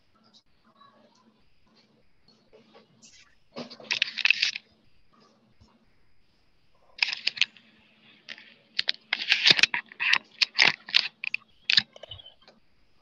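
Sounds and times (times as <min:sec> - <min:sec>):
faint electrical hum: 0:00.0 - 0:13.0.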